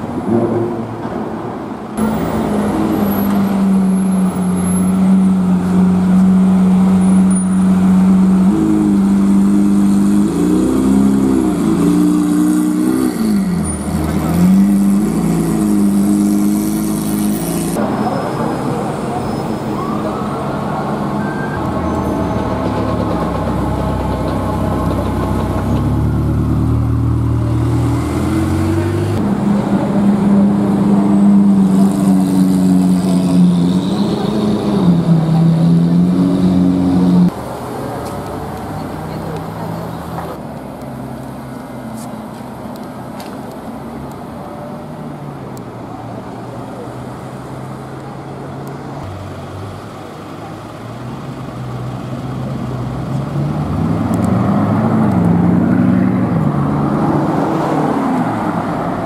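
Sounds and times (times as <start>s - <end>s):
car engines revving at low revs: 0.1s - 19.2s, 20.0s - 59.0s.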